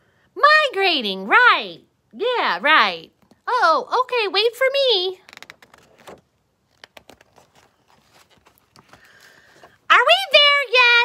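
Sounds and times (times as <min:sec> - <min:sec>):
book page rustling and turning: 0:05.2 - 0:09.9.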